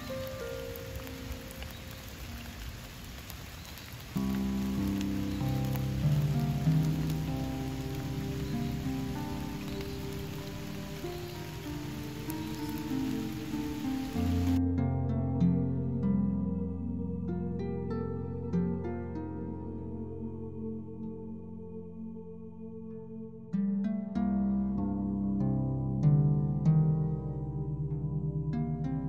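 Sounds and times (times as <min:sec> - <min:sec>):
rain falling on water: 0:00.0 - 0:14.6
gentle instrumental music: 0:00.0 - 0:29.0.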